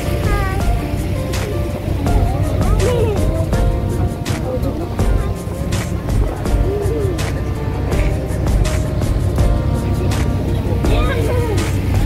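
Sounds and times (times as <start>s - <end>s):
background music with beat: 0.0s - 12.0s
low rumble: 0.0s - 12.0s.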